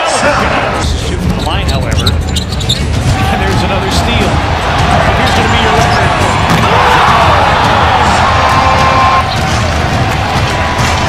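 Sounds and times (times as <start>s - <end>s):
background music: 2.6s - 11.0s
crowd cheering: 2.8s - 11.0s.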